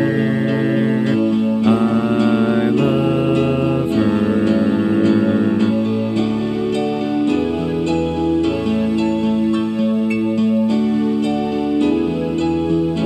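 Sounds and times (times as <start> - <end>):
dreamy piano chords: 0.0 - 13.0.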